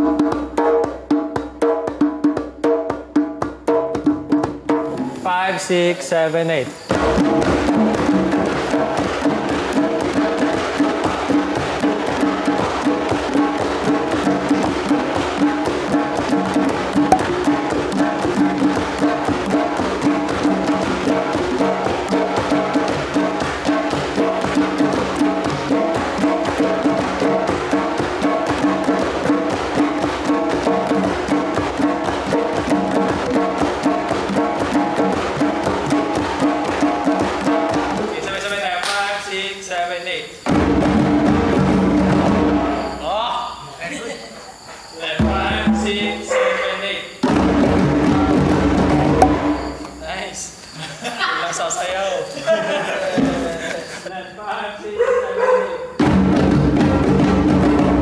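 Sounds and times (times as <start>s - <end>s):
djembe hand drums: 0.0s - 5.3s, 6.7s - 38.5s, 40.4s - 43.0s, 45.2s - 46.3s, 47.2s - 50.0s, 52.8s - 53.7s, 56.0s - 58.0s.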